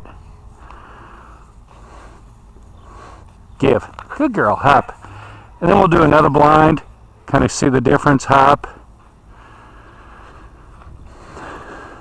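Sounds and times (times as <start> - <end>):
steady low rumble: 0.0 - 6.0, 8.6 - 12.0.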